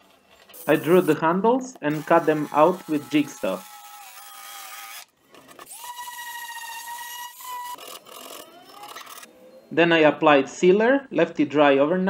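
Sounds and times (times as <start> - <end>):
jigsaw motor whine: 1.9 - 9.7.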